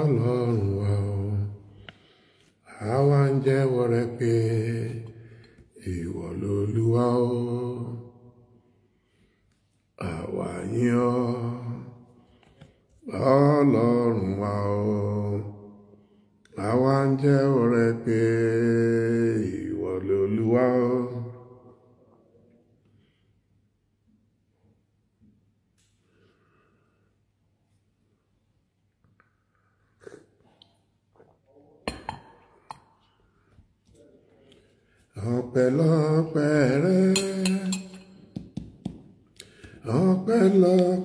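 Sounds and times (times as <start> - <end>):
man chanting in low voice: 0.0 - 1.8, 2.6 - 8.5, 10.0 - 12.2, 13.0 - 22.6, 33.8 - 38.1, 39.8 - 41.0
man chanting low: 2.7 - 5.1.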